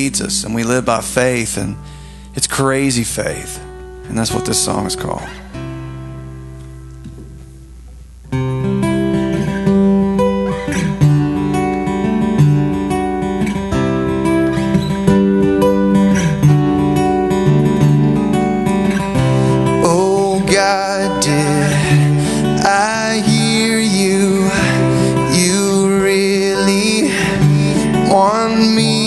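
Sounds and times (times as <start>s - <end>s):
acoustic guitars strumming: 0.0s - 29.0s
man singing: 19.5s - 29.0s.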